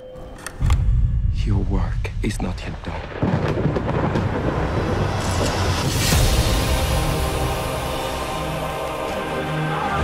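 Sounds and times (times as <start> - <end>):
deep thunder-like rumble: 0.7 - 7.2.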